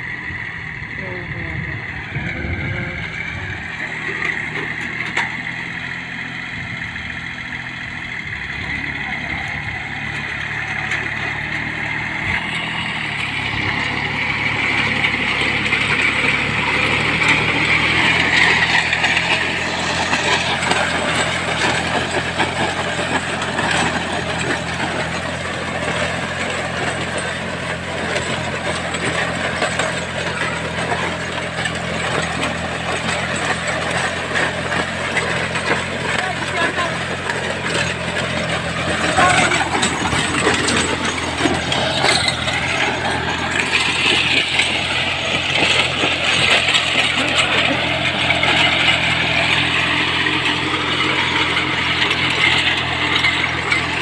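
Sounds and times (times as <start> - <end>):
plough discs working soil: 0.0 - 54.0
tractor diesel engine running: 0.0 - 54.0.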